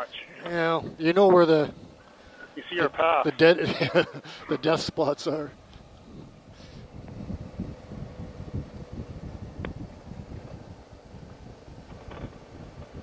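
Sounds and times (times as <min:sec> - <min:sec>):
faint steady hum: 0:00.0 - 0:13.0
wind buffeting microphone: 0:00.6 - 0:02.0, 0:05.6 - 0:13.0
motorcycle engine rumble: 0:05.5 - 0:13.0.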